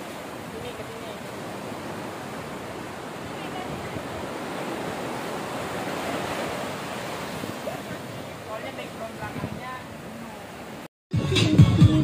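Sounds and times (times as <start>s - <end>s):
ocean surf on sandy beach: 0.0s - 10.9s.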